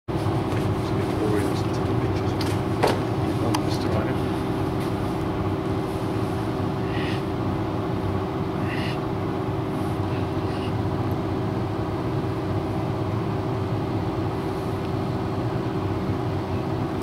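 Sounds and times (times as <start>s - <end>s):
low mechanical hum: 0.1s - 17.0s.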